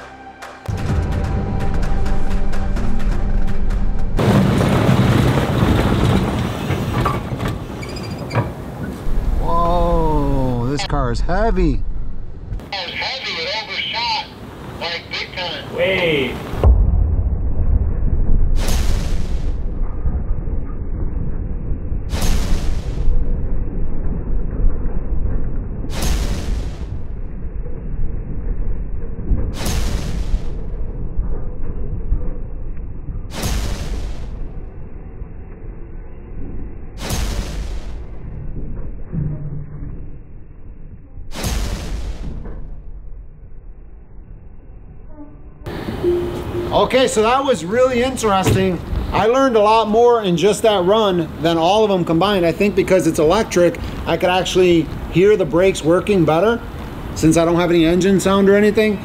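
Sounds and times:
deep continuous rumble: 0.7s - 59.0s.

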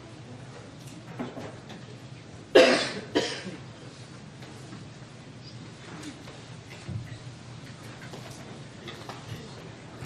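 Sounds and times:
person coughing: 2.5s - 3.6s.

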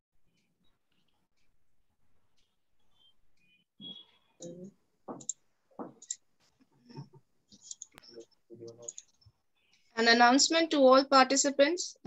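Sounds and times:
man speaking over video call: 8.0s - 9.2s.

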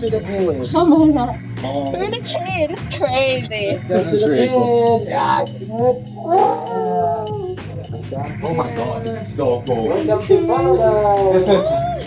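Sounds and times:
background music: 0.0s - 12.0s
woman's howl-like cry: 6.3s - 7.6s, 11.5s - 12.0s.

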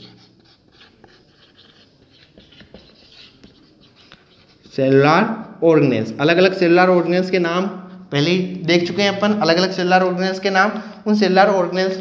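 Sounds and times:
marker pen writing on whiteboard: 0.0s - 5.6s.

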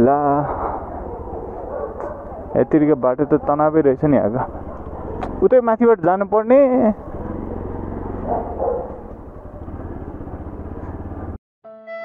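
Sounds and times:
motorcycle engine running: 0.1s - 11.4s.

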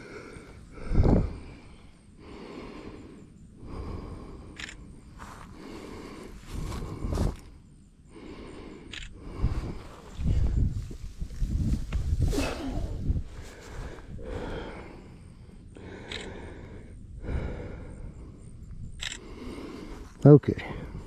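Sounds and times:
rustling in dry grass: 9.5s - 14.1s.

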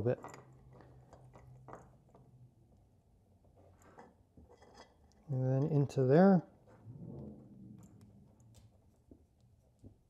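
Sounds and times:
small clicks and scrapes of parts: 0.1s - 2.4s, 3.4s - 5.8s.

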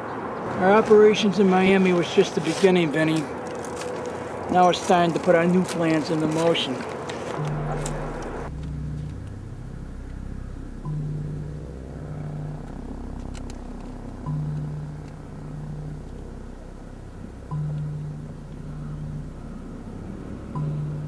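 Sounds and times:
steady low rumble: 0.6s - 21.0s
low bass music: 3.1s - 21.0s.

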